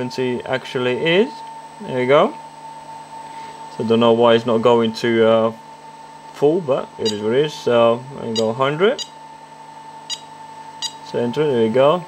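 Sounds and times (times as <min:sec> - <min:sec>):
faint motor hum and whine: 0:00.0 - 0:12.0
short electronic key beeps: 0:08.4 - 0:09.2, 0:10.1 - 0:11.1.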